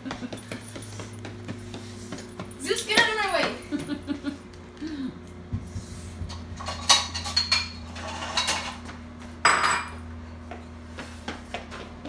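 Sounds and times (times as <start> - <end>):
metal dishes and cutlery clattering: 6.6 - 8.8.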